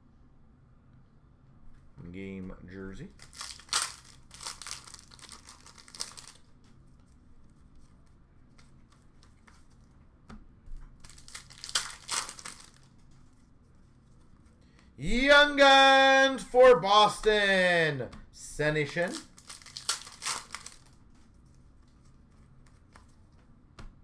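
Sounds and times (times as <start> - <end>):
plastic wrapper crinkling and tearing: 3.2 - 6.5, 11.0 - 13.0, 19.0 - 21.0.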